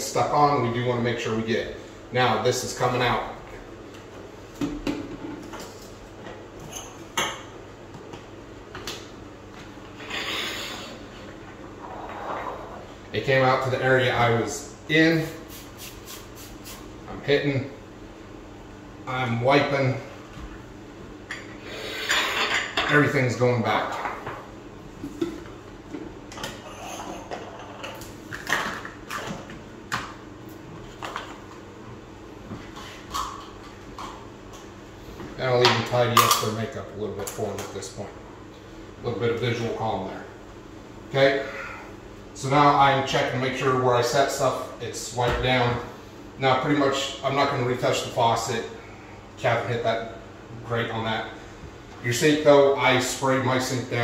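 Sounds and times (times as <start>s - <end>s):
rubbing hiss on marble: 10.0s - 11.0s.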